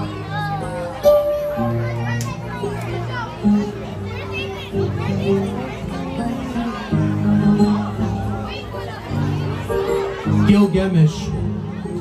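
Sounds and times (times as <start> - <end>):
children's voices: 0.0 - 10.5, 11.2 - 12.0
crowd chatter: 0.0 - 12.0.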